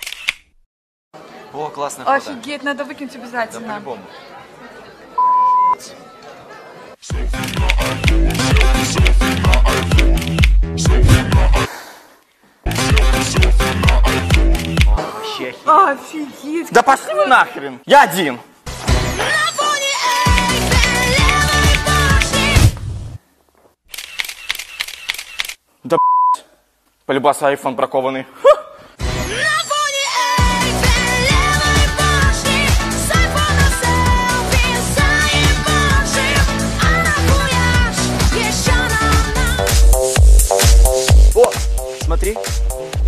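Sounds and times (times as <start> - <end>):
camera shutter clicks in rapid burst: 0.0 - 0.5, 23.9 - 25.6.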